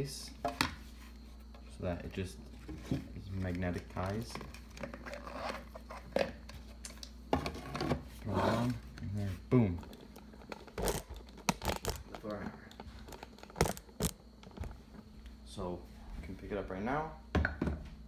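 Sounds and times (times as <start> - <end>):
plastic handling and rustling: 0.6 - 15.2.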